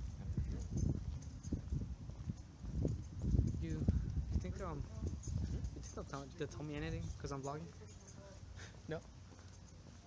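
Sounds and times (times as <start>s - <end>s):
wind rumble on microphone: 0.0s - 7.3s
footsteps on pavement: 0.0s - 10.0s.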